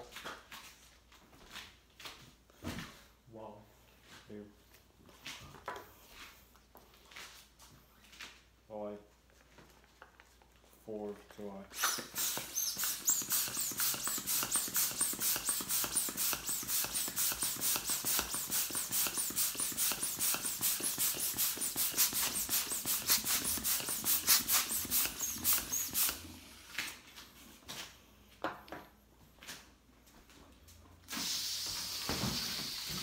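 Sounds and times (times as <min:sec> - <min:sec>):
hand balloon pump strokes: 0:11.7 - 0:26.6, 0:31.1 - 0:33.0.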